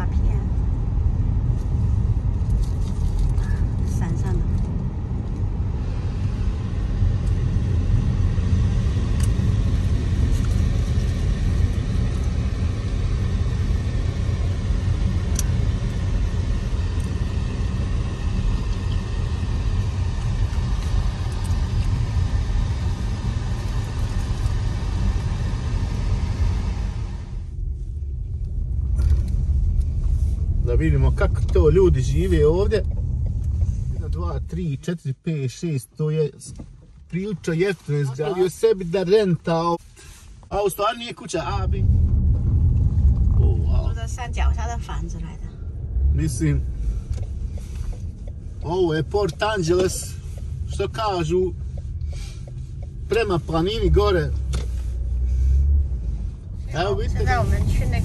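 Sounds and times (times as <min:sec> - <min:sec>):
car tyres and engine rumble: 0:00.0 - 0:58.0.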